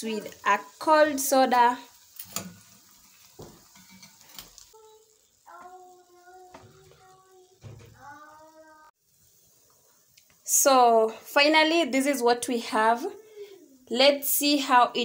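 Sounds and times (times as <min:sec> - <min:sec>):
hot oil sizzling: 0:00.0 - 0:15.0.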